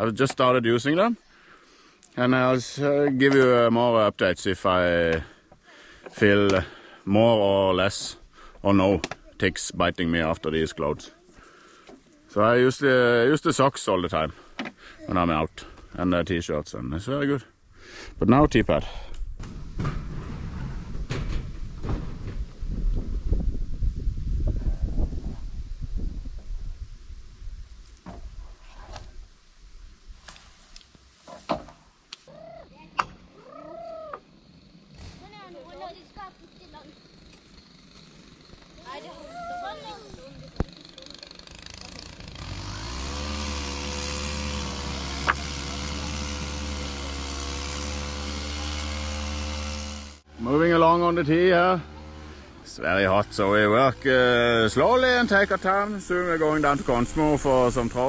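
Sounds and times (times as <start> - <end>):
small engine running: 35.9 - 39.2, 40.0 - 58.0.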